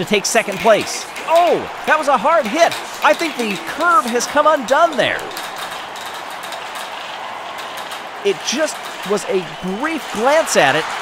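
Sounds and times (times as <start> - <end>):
glass marbles rolling on track: 0.4 - 10.8.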